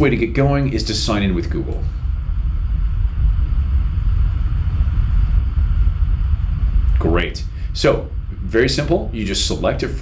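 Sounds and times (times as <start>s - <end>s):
faint hiss: 0.0s - 10.0s
low rumble: 0.0s - 10.0s.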